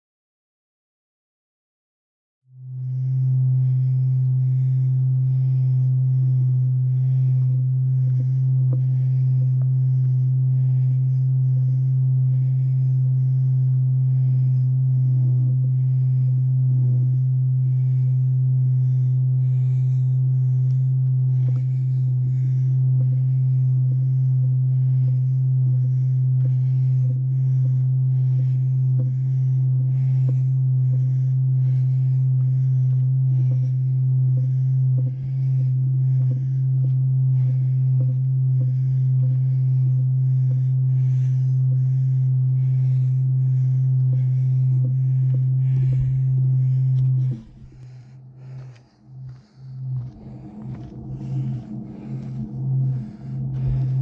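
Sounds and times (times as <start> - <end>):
loud low-pitched hum: 2.5 - 54.0.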